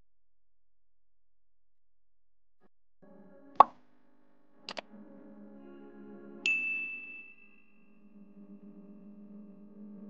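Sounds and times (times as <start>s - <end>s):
faint background music: 3.0s - 10.0s.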